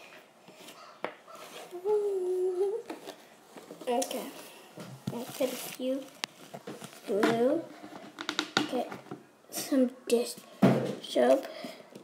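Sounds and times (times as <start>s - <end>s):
person humming: 1.7s - 2.9s.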